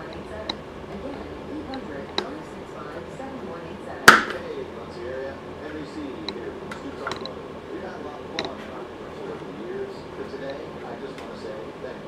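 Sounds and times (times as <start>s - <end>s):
faint voices murmuring: 0.0s - 12.0s.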